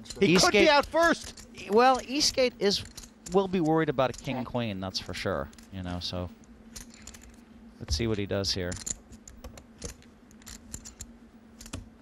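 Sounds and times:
faint steady hum: 0.0s - 12.0s
poker chips clicking: 6.8s - 7.4s, 8.7s - 11.8s.

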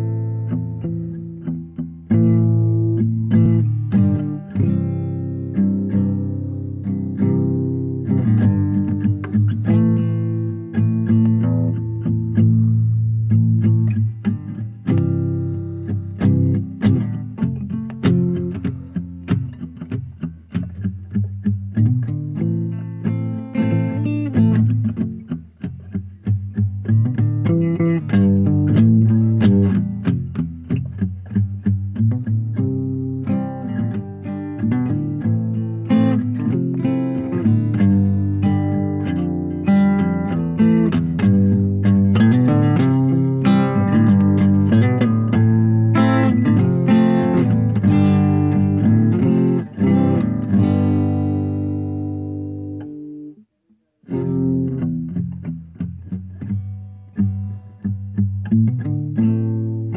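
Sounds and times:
guitar playing plucked notes: 0.0s - 59.9s.

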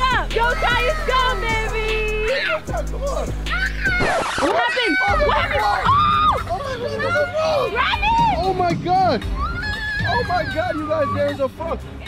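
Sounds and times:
children's excited voices: 0.0s - 8.4s
background music: 0.0s - 12.0s.

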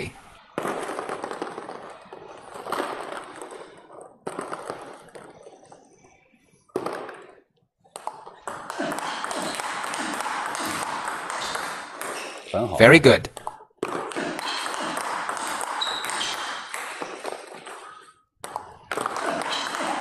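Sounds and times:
ball bouncing on table: 6.8s - 12.5s, 13.3s - 20.0s
ping-pong ball clicking off paddles: 13.3s - 20.0s.

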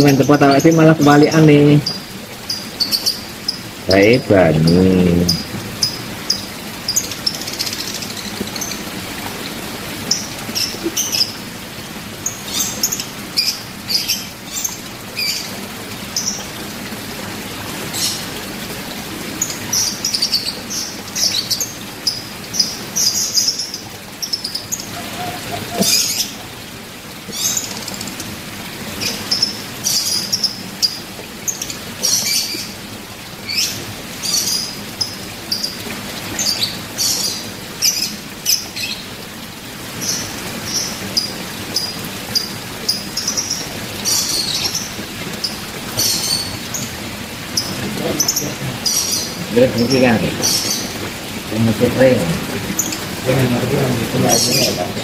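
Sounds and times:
small birds chirping: 0.0s - 16.6s, 19.3s - 26.6s, 29.0s - 32.8s, 33.4s - 39.2s, 40.0s - 55.0s.

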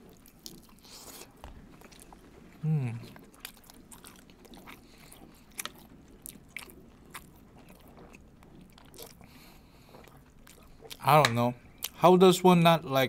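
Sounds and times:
person chewing food: 0.0s - 12.0s
mouth clicks and smacks: 10.0s - 12.0s.

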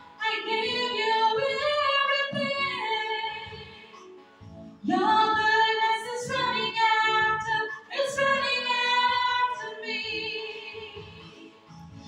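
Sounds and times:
electronic keyboard: 0.0s - 12.0s
women singing together: 0.1s - 4.1s, 4.8s - 11.8s.

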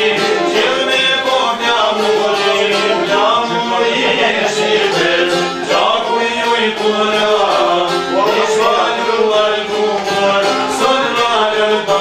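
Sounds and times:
man singing folk song: 0.0s - 12.0s
plucked lute: 0.0s - 12.0s.

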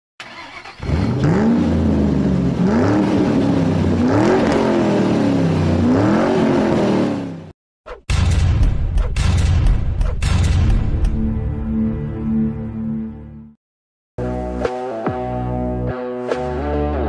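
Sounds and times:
car engine revving: 0.2s - 7.5s.

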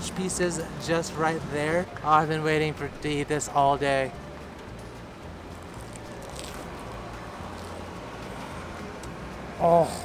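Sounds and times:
low traffic rumble: 0.0s - 10.0s
crunch of bite into crisp bread: 5.6s - 6.9s.

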